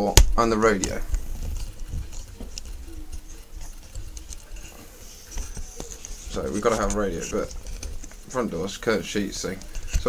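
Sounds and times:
faint clicks and knocks: 0:00.2 - 0:08.2.

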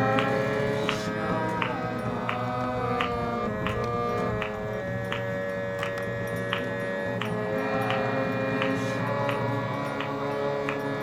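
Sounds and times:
harmonium playing chords: 0:00.0 - 0:11.0.

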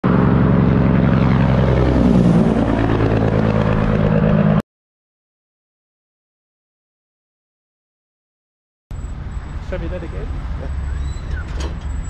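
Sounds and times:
highway traffic: 0:00.0 - 0:04.6, 0:08.9 - 0:12.0
truck engine droning: 0:00.0 - 0:04.6, 0:08.9 - 0:12.0.

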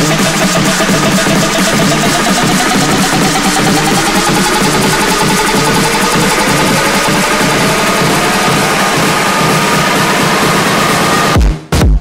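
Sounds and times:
rising synth sweep: 0:00.0 - 0:11.4
electronic dance music: 0:00.0 - 0:12.0.

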